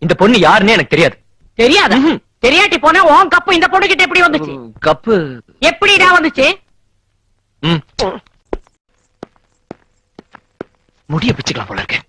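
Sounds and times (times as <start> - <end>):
footsteps on hard floor: 8.5 - 11.1.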